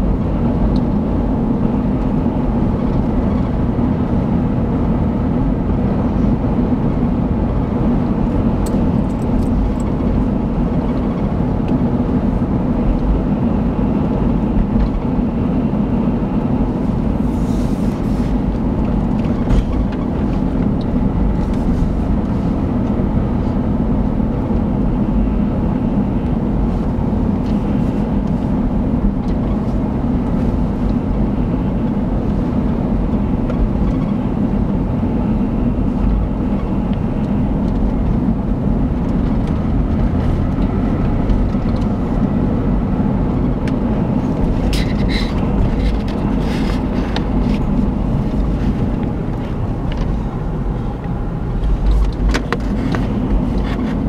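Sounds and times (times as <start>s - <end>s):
car road and engine noise: 0.0s - 54.0s.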